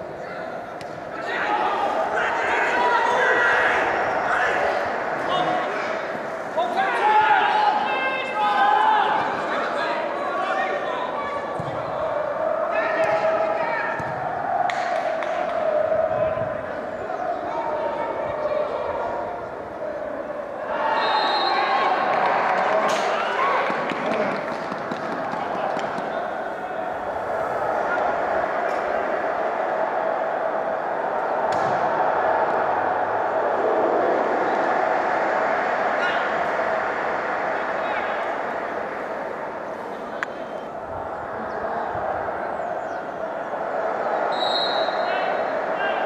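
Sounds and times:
faint hum: 0:00.0 - 0:46.0
steady hum: 0:24.2 - 0:46.0
faint calls from players: 0:34.0 - 0:46.0.

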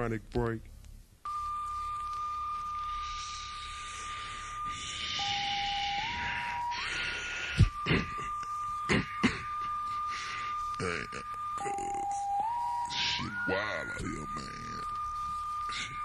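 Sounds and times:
tape hiss: 0:00.0 - 0:16.0
high electronic tone: 0:01.3 - 0:16.0.

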